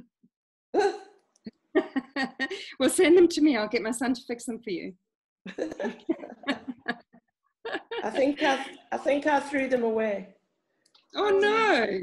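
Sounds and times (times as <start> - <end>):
person laughing: 1.8 - 2.7, 5.5 - 7.1, 7.7 - 8.9
laughing speech: 1.9 - 2.7, 7.7 - 9.6.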